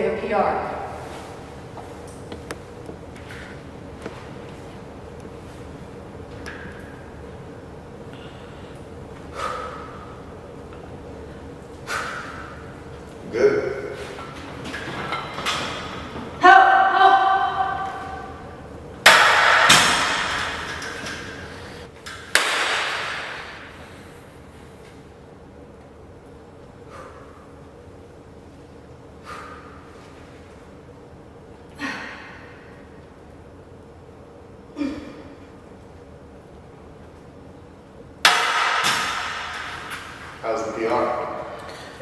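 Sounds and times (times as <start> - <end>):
person shouting for help: 16.4 - 18.1
barbell weight plates crashing: 19.0 - 21.4.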